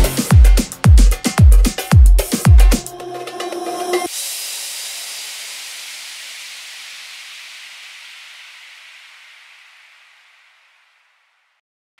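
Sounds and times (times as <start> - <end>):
hissing sweep effect: 2.3 - 11.4.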